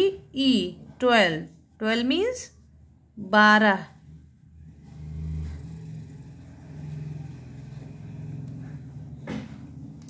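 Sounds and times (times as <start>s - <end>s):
engine rumbling: 2.6s - 10.0s.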